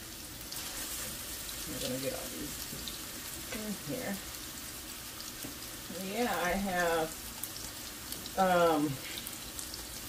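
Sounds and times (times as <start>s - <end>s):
meat patties sizzling in oil: 0.0s - 10.0s.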